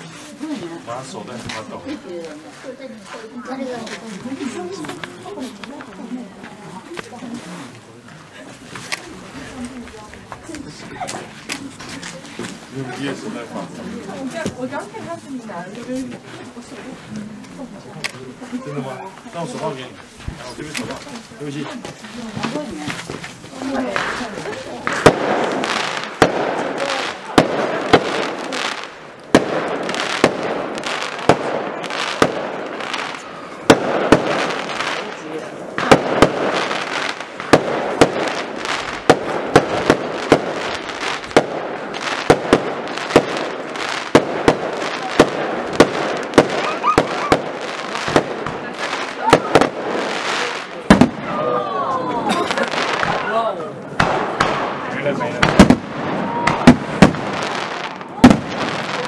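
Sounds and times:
fireworks bangs: 0:08.4 - 0:59.0.

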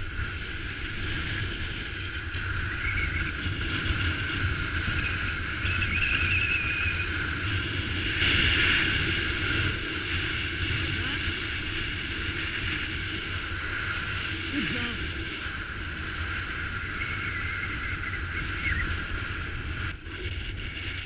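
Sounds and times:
wind buffeting camera microphone: 0:00.0 - 0:21.0.

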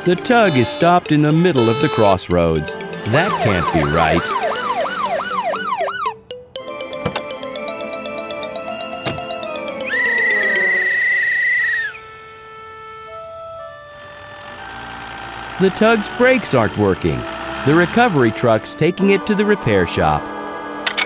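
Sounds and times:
soft music notes: 0:00.0 - 0:10.7
police whistle trilling: 0:00.4 - 0:01.0, 0:01.6 - 0:02.2, 0:09.8 - 0:13.9
cartoon police siren wailing: 0:00.5 - 0:01.0, 0:01.6 - 0:02.2, 0:03.0 - 0:06.3, 0:09.8 - 0:14.6.

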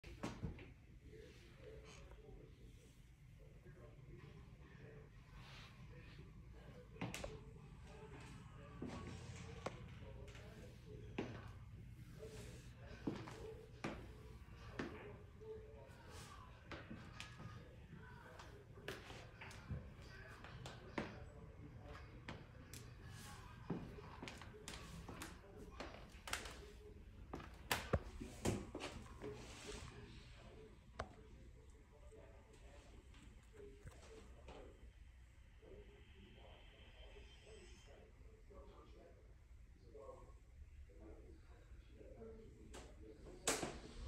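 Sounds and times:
muffled television voices: 0:00.0 - 0:44.0.

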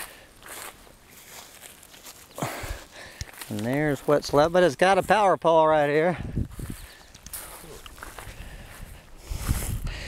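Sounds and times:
footsteps on grass: 0:00.0 - 0:10.0.

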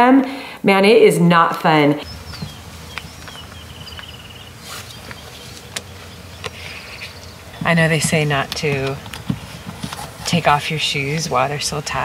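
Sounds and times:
small birds chirping: 0:02.0 - 0:12.0.

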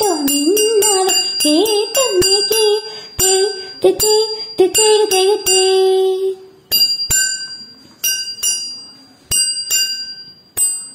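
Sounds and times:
hand cymbals struck: 0:00.0 - 0:05.8, 0:06.7 - 0:10.9.

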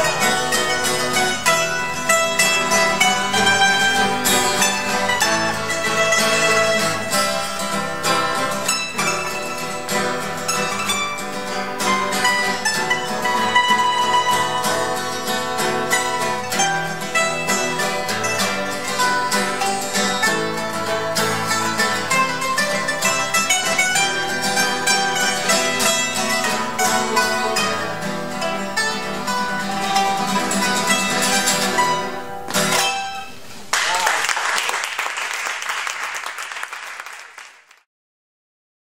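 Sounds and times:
plucked string ensemble: 0:00.0 - 0:33.8
audience applause: 0:33.7 - 0:37.8.

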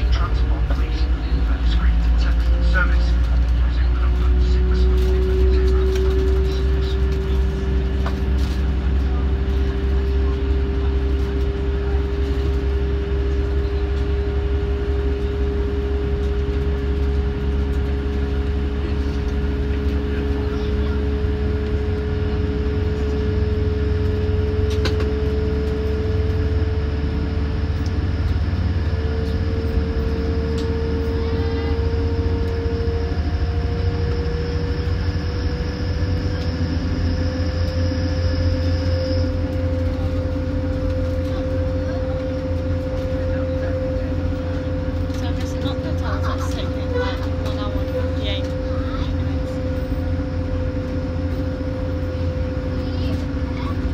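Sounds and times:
diesel train engine rumble: 0:00.0 - 0:53.9.

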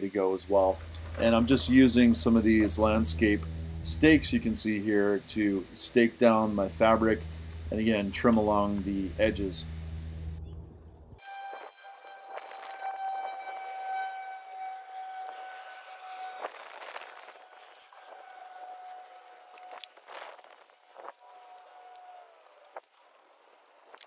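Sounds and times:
steady machine whine: 0:00.0 - 0:21.4
faint high falling tone: 0:00.4 - 0:20.1.

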